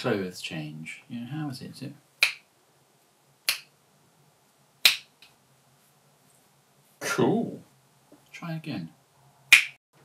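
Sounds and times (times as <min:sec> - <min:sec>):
finger snaps: 0:02.2 - 0:02.4, 0:03.5 - 0:03.7, 0:04.8 - 0:05.3, 0:09.5 - 0:09.8.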